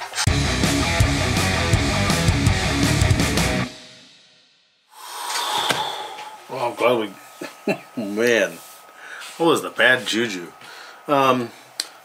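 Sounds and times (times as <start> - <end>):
rock music with drums and guitar: 0.2 - 4.2.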